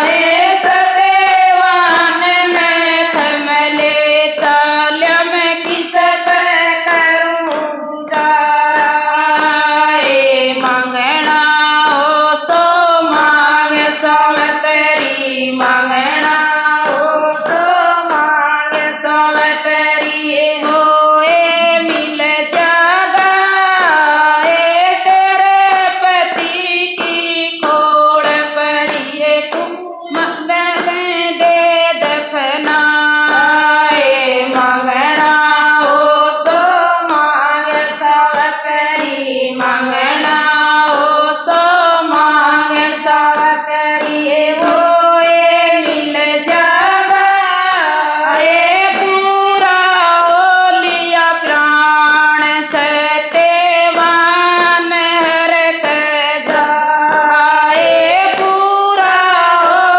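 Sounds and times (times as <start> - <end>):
hand claps keeping time: 0.0 - 59.9
women singing in unison: 0.0 - 59.9.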